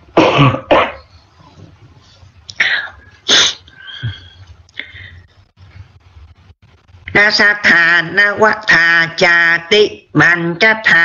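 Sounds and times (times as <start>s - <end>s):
person coughing: 0.1s - 1.2s.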